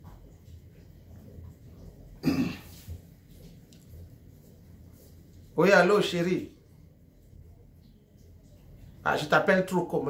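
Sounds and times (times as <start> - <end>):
man clearing throat: 2.2 - 2.8.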